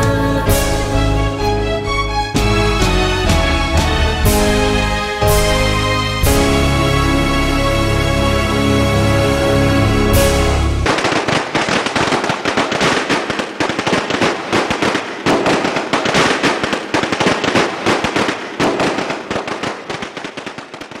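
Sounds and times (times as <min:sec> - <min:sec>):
fireworks crackling: 0:10.1 - 0:21.0.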